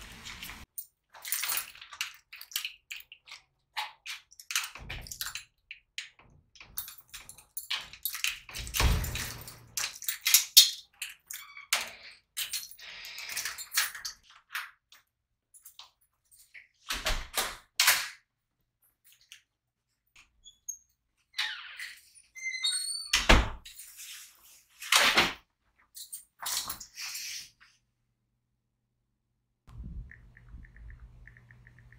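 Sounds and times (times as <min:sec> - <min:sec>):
keys rattling in a lock: 0:00.6 - 0:03.4, 0:04.0 - 0:18.2, 0:18.8 - 0:19.6, 0:25.8 - 0:27.4
door squeak: 0:20.4 - 0:23.6.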